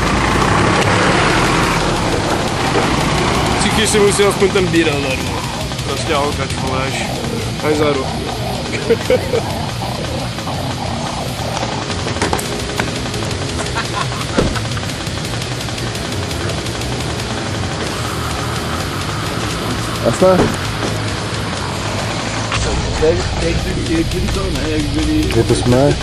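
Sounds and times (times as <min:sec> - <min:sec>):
music playing: 0:00.0 - 0:26.0
vehicle noise drone: 0:00.0 - 0:26.0
voices: 0:00.0 - 0:26.0.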